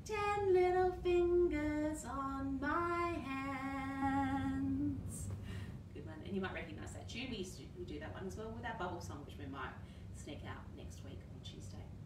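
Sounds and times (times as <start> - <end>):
woman singing: 0.0 - 5.3
soft hiss: 0.0 - 12.0.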